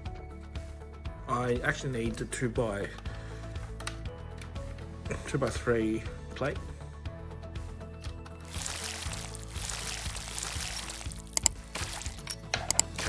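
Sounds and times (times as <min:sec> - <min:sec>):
background music: 0:00.0 - 0:13.0
plastic pieces rustling and scraping: 0:08.5 - 0:12.4.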